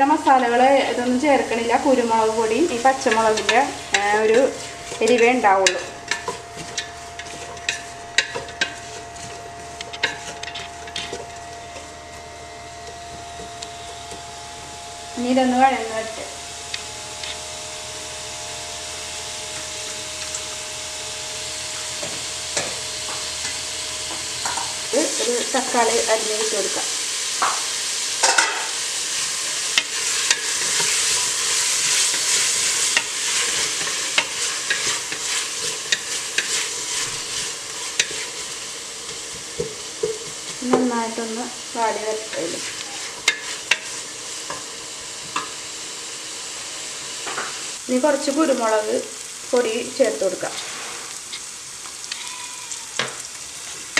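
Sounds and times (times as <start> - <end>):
onions sizzling in a pot: 0.0 - 53.9
spatula scraping metal pot: 3.0 - 12.2, 29.8 - 38.4.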